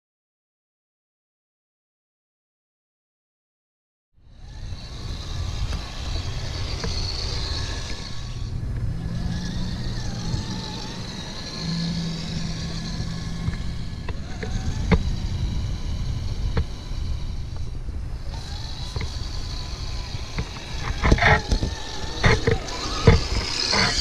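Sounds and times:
low steady hum: 0:04.2 - 0:24.0
toy trucks driving on snow: 0:04.3 - 0:24.0.

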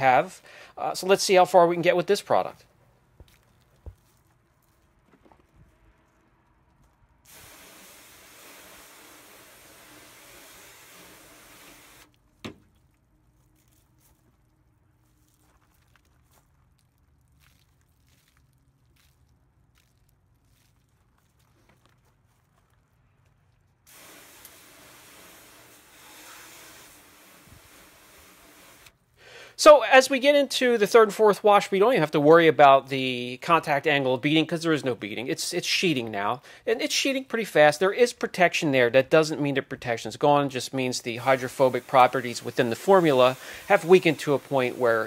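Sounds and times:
hose spraying water on car: 0:07.3 - 0:12.2, 0:23.9 - 0:29.0, 0:40.5 - 0:45.0.

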